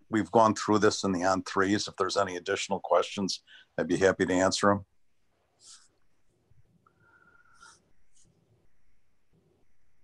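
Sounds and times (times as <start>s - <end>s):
faint steady tone: 0.0s - 10.0s
faint breath-like hisses: 6.9s - 7.9s.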